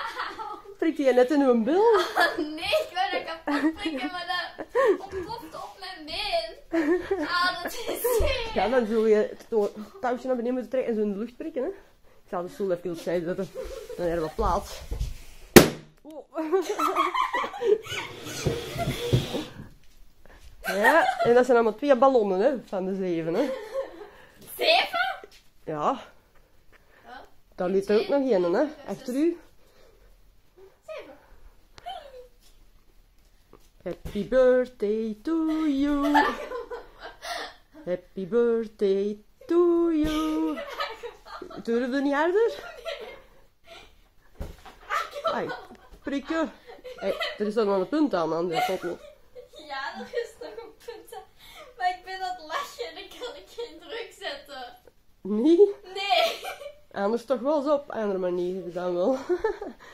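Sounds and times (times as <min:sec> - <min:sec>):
balloon bursting pop: 0:15.5 - 0:16.0.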